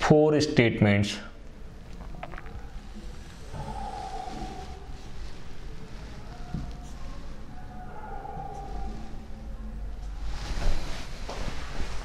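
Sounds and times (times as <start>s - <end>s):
steady low hum: 1.2s - 12.0s.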